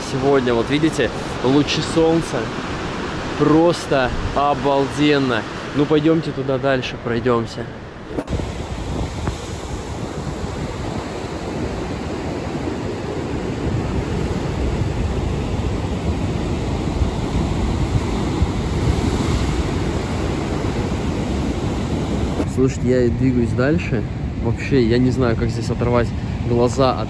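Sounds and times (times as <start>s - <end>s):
sea surf breaking: 0.0s - 27.0s
wind buffeting microphone: 7.7s - 27.0s.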